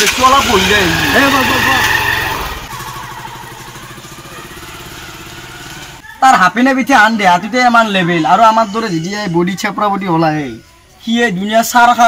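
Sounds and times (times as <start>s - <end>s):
motorcycle engine pulling away: 0.0s - 6.0s.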